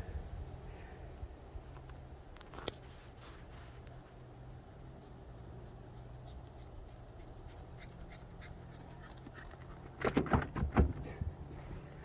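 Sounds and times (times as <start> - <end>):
dog panting: 5.0 - 9.8.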